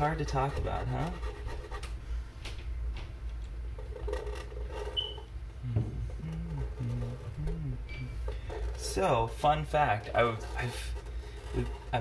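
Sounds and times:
pens scratching on paper: 0:00.0 - 0:02.0, 0:03.8 - 0:05.2, 0:08.3 - 0:12.0
low hum: 0:01.9 - 0:12.0
low voice: 0:05.6 - 0:07.9.

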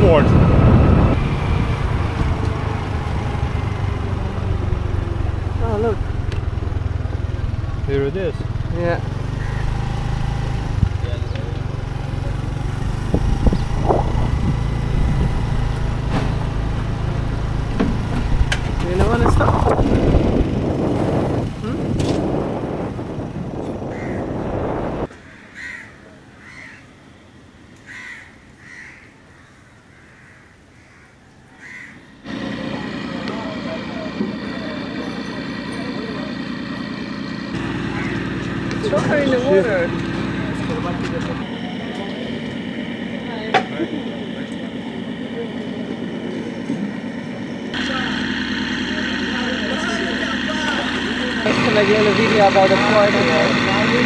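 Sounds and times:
wind noise: 0:00.0 - 0:02.4, 0:12.8 - 0:16.1, 0:18.2 - 0:25.1
motorbike engine: 0:00.0 - 0:25.1, 0:31.6 - 0:54.0
crows cawing: 0:09.3 - 0:09.8, 0:23.9 - 0:24.4, 0:25.1 - 0:27.0, 0:27.8 - 0:32.3, 0:37.6 - 0:38.6
murmur of voices: 0:32.4 - 0:36.7, 0:37.8 - 0:54.0.

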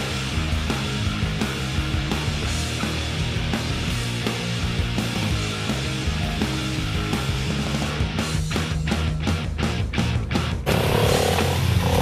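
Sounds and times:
rock music with dense bass: 0:00.0 - 0:12.0.

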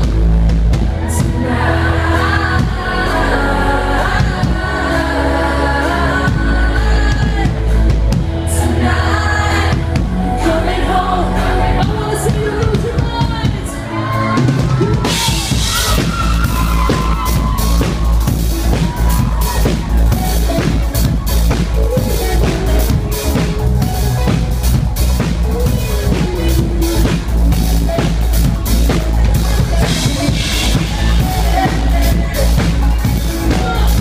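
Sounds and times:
drums: 0:00.0 - 0:34.0
live rock band playing: 0:00.0 - 0:34.0
steady bass: 0:00.0 - 0:34.0
lead vocal singing: 0:00.8 - 0:34.0.

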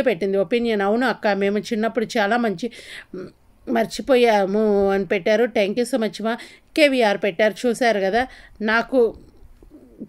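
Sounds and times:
woman's wavering vocal sounds: 0:09.1 - 0:10.0.

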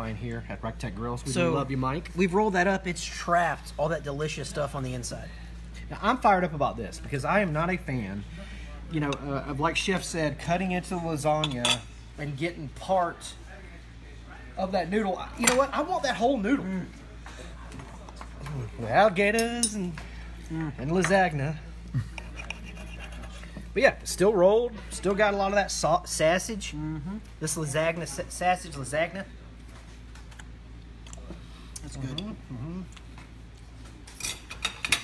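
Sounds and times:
food and utensils crackling and clicking: 0:22.0 - 0:23.8, 0:29.6 - 0:35.0.

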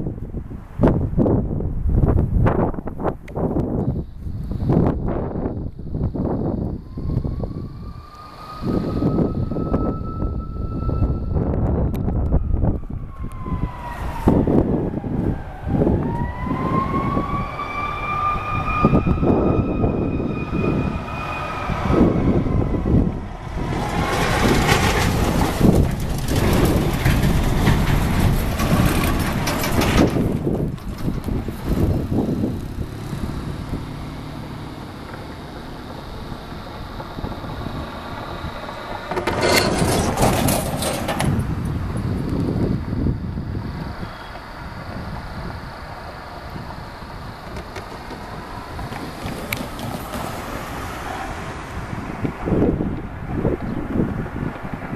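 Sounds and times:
low traffic rumble: 0:00.0 - 0:54.9
emergency vehicle siren wailing: 0:06.0 - 0:40.0, 0:40.6 - 0:54.5
loud rushing noise: 0:18.4 - 0:30.6.

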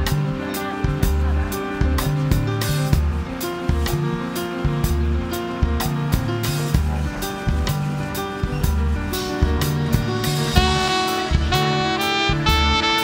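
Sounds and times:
drum kit beat: 0:00.0 - 0:13.0
sustained keyboard notes: 0:00.0 - 0:13.0
repeating bass line: 0:09.7 - 0:13.0
guitar notes: 0:10.6 - 0:13.0.

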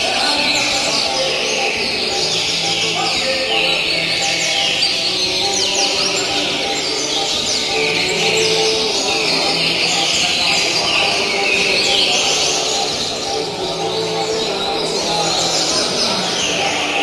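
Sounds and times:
birds singing whistled phrases: 0:00.0 - 0:17.0
low background murmur: 0:00.0 - 0:17.0.

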